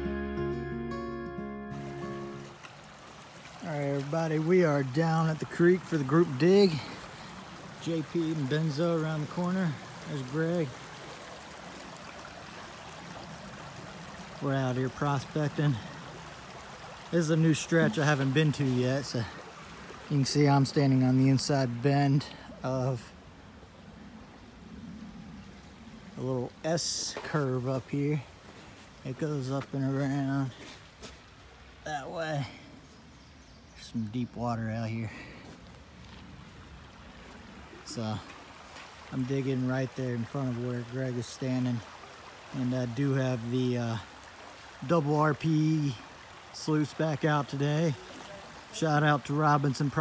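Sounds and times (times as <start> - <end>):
creek water flowing: 0.0 - 50.0.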